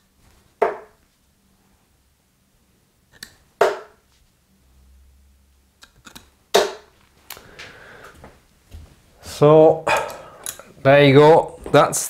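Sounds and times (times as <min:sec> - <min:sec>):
darts thudding into dartboard: 0:00.6 - 0:01.0, 0:03.6 - 0:04.0, 0:06.5 - 0:06.9.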